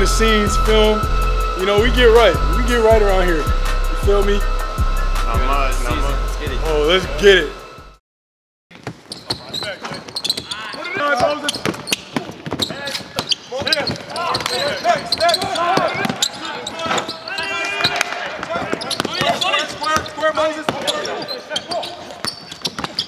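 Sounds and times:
players shouting: 13.6s - 22.1s
basketball bouncing on court: 22.2s - 23.0s.

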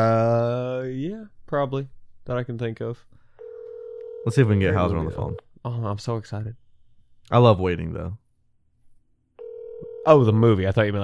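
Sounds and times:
telephone ringback tone: 3.4s - 5.4s, 9.4s - 10.1s.

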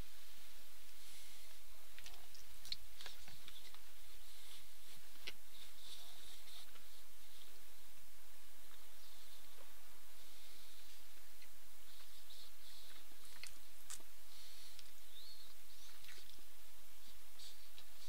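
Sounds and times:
faint high chirps: 14.5s - 18.0s.

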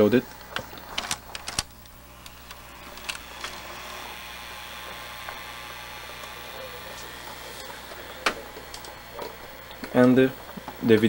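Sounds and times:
mains hum: 0.0s - 11.0s
tape drive whirring: 0.0s - 11.0s.

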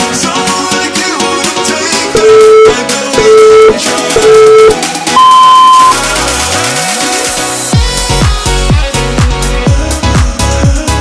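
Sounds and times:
electronic background music: 0.3s - 8.7s
timer beeps: 2.2s - 6.0s.

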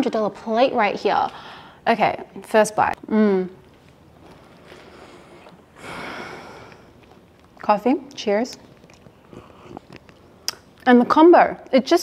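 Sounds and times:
soft breathing: 1.3s - 1.8s, 4.3s - 7.2s
person chewing food: 3.6s - 5.8s, 6.4s - 10.9s.

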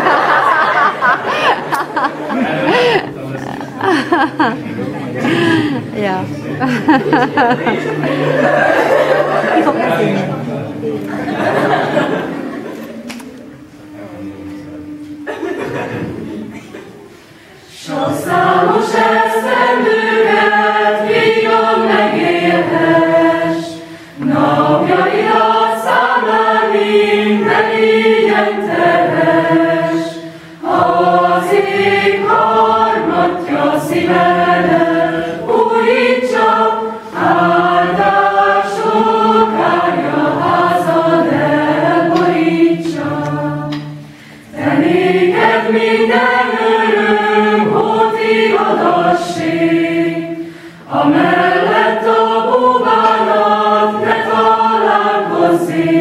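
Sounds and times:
choir singing in parts: 0.0s - 4.7s, 6.6s - 56.0s.

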